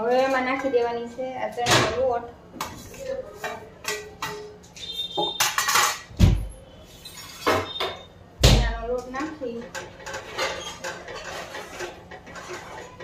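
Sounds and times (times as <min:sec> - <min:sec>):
spoon scraping steel plate: 0:06.7 - 0:08.1, 0:09.5 - 0:13.0.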